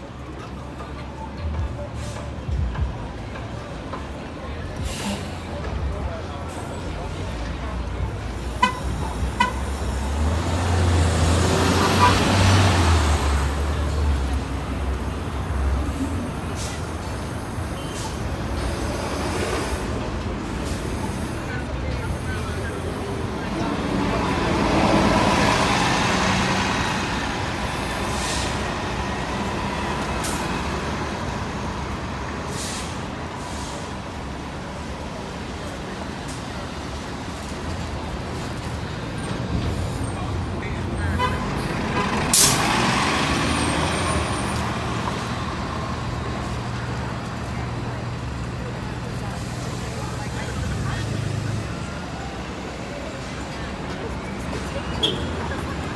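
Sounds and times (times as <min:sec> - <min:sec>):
bus engine rumble: 0:00.0 - 0:55.9
bus whine: 0:00.0 - 0:55.9.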